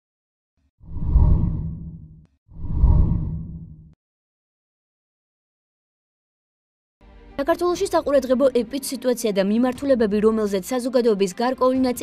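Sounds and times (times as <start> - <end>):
deep whoosh: 0.9 - 3.9.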